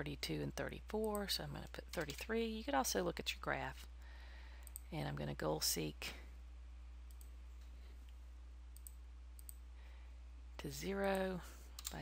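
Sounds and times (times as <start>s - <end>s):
low electrical hum: 0.0s - 12.0s
computer mouse clicks: 1.9s - 2.3s, 4.6s - 4.9s, 7.1s - 7.3s, 8.8s - 9.6s, 11.0s - 12.0s.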